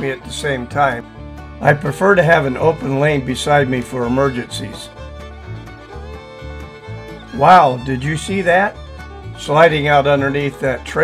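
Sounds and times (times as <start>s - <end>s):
fiddle holding long notes: 0.0s - 11.0s.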